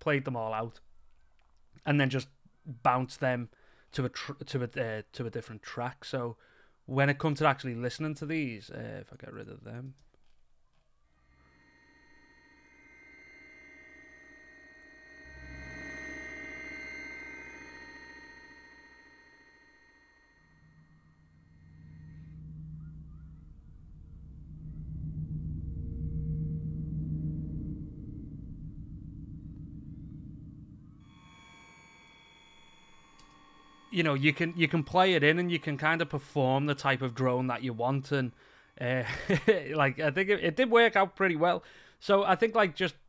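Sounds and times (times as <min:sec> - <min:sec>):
deep synthesizer drone: 0:11.1 - 0:40.3
sustained high bell tones: 0:11.1 - 0:40.3.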